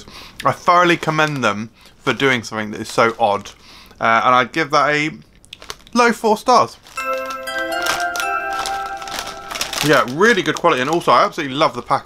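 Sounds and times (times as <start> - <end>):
bell-like chimes: 7.0 - 10.4
foil packet crinkling: 8.3 - 11.1.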